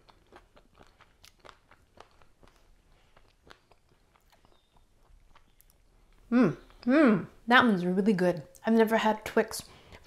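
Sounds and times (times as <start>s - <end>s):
person chewing crunchy food: 0.0s - 6.9s.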